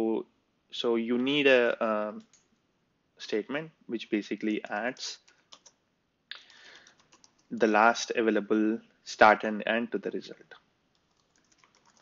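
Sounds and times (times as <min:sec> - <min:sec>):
soft keyboard keystrokes: 0:06.8 - 0:07.7, 0:10.9 - 0:12.0.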